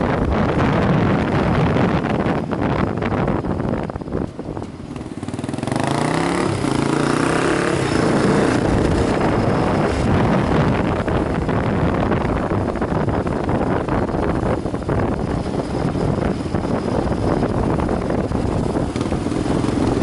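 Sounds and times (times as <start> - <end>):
wind rushing over microphone: 0.0 - 20.0
motorcycle engine revving: 0.1 - 20.0.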